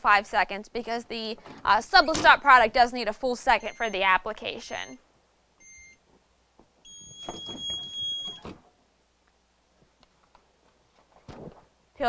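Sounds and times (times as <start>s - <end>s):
digital timer beeping: 3.6s - 4.0s
handling noise: 6.0s - 8.8s.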